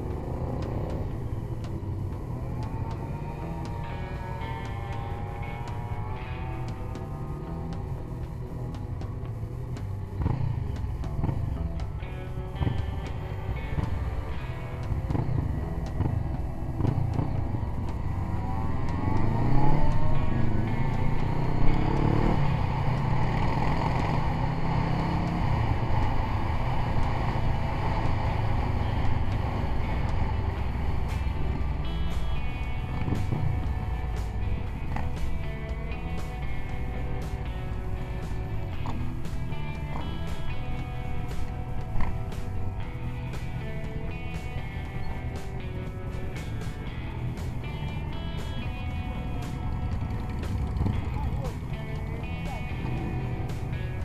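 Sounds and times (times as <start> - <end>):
motorcycle engines running: 0.0 - 54.0.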